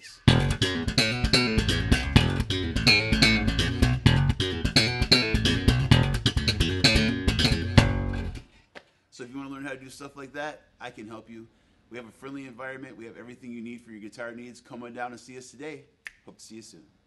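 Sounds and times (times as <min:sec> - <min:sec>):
slap bass funk groove: 0:00.0 - 0:08.4.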